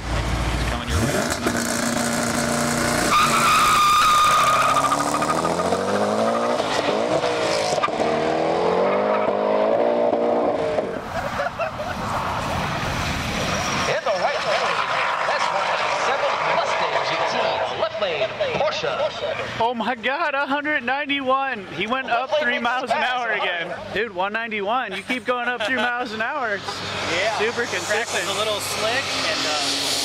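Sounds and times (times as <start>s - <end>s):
car engine accelerating: 0.0s - 18.8s, 26.6s - 30.0s.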